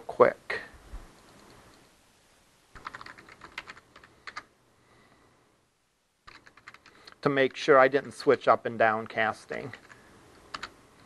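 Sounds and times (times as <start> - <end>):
typing on computer keyboard: 2.8 - 4.5, 6.2 - 7.2, 9.5 - 11.0.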